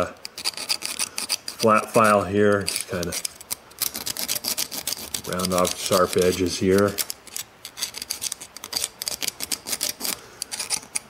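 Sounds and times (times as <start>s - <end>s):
file scraping metal: 0.0s - 11.0s.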